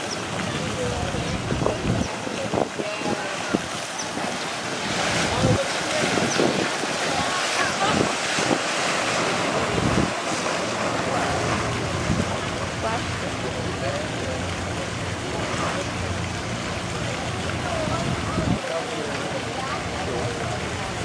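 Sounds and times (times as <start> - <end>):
water splashing and churning: 0.0 - 21.0.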